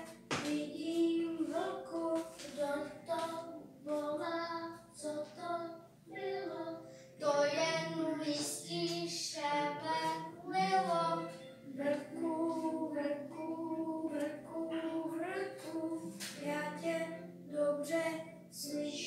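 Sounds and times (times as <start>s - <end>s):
children singing: 4.2s - 19.0s.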